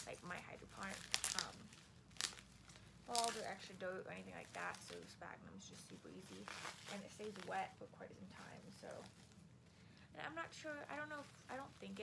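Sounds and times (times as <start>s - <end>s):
plastic wrap crinkling: 0.0s - 12.0s.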